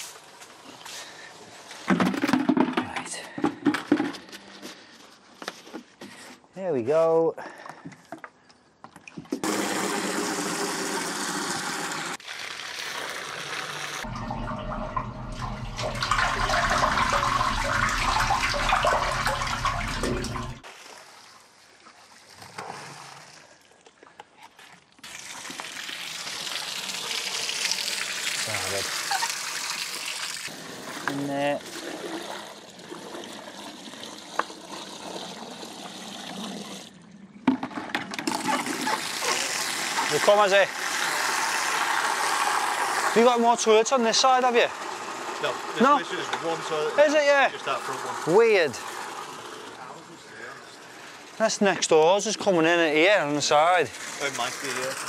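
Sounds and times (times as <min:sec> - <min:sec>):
water pouring and splashing: 0:09.0 - 0:55.0.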